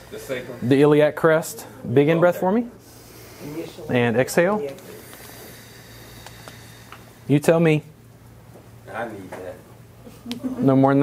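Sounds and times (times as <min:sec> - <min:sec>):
faint airy hiss: 0:00.0 - 0:10.3
faint ticks: 0:06.2 - 0:07.1.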